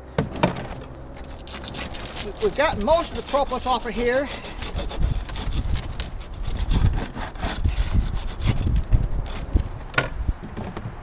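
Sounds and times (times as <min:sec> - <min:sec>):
plastic scraping: 0:00.0 - 0:11.0.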